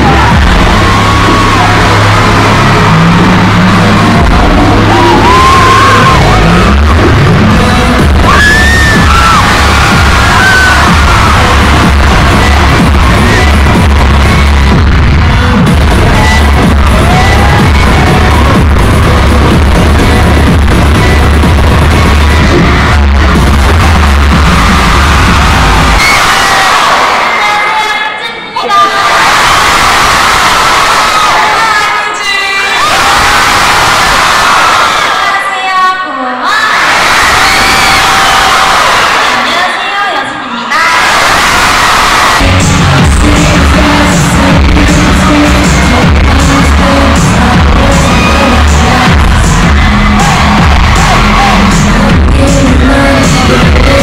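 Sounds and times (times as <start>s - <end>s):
amplified pop music with heavy bass: 0.0s - 28.1s, 28.9s - 54.0s
crowd cheering and screaming: 0.0s - 54.0s.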